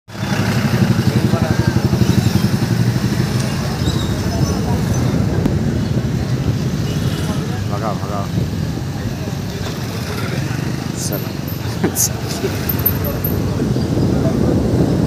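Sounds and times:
motorcycle engine running: 0.1 - 7.7
surrounding traffic hum: 0.1 - 15.0.

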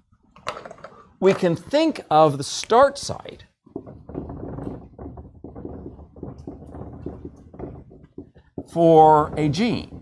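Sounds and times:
marker writing on whiteboard: 3.7 - 10.0.

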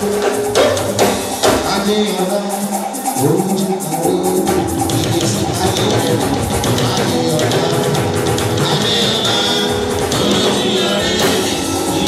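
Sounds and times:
live band with guitar and drums: 0.0 - 12.0.

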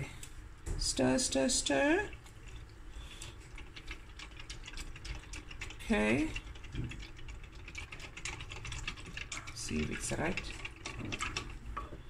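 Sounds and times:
liquid swishing: 1.4 - 12.0.

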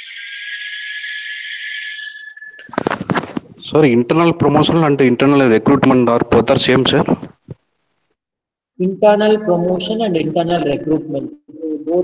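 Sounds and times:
high steady whistle: 0.0 - 2.8.

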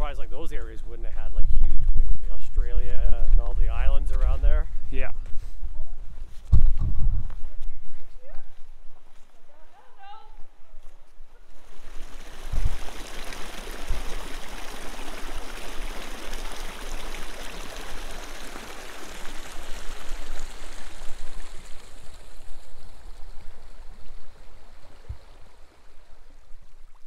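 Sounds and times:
dull low thumps: 1.4 - 9.1
creek running over stones: 11.4 - 27.0.

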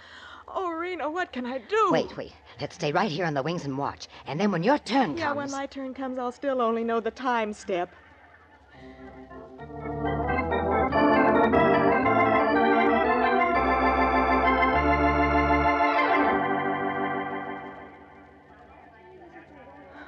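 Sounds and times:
organ chords: 8.8 - 18.6.

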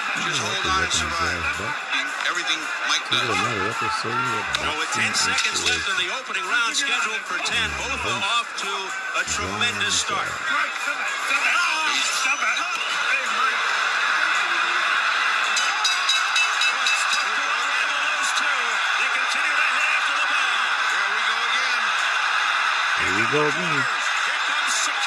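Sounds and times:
crowd of spectators' voices: 0.0 - 25.0.

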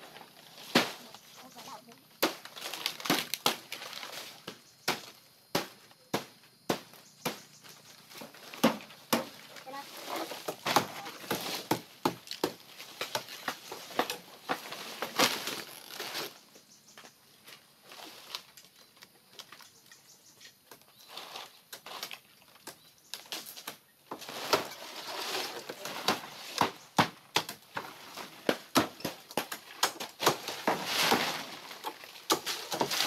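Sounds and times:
dry palm fronds rustling: 0.0 - 33.0
sharp snaps and knocks: 26.1 - 33.0.

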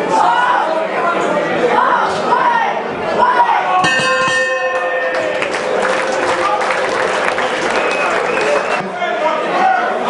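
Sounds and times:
crowd voices in a large hall: 0.0 - 10.0
boxing bell ringing: 3.8 - 5.4.

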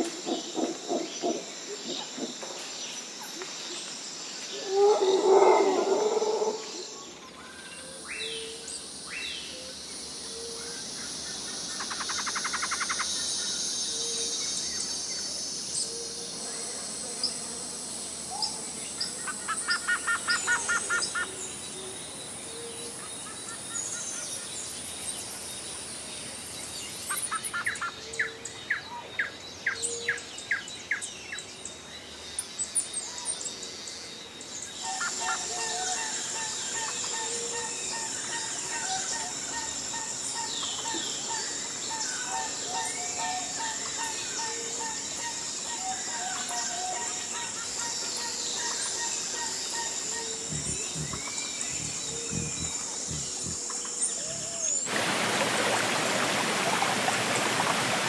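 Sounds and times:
steady high hiss: 6.2 - 58.0
birds chirping and whistling: 49.8 - 54.9.

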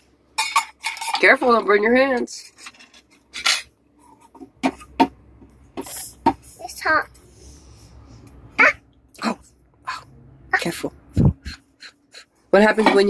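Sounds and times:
small child murmuring: 8.5 - 12.3.

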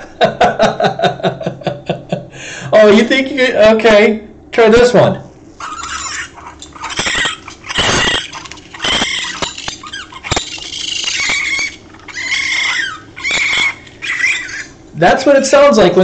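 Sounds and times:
raccoon pup high-pitched cries: 5.5 - 14.8.

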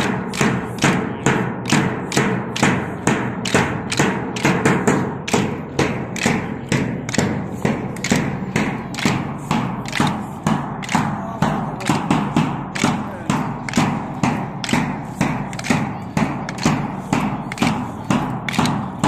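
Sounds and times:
bass drum beaten in rhythm: 0.0 - 19.0
wooden dumbbells clacking: 1.6 - 19.0.

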